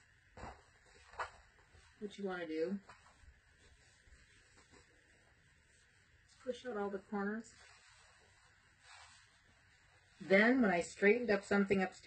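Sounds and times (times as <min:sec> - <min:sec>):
faint rustle of cotton fabric: 0:00.4 - 0:12.0.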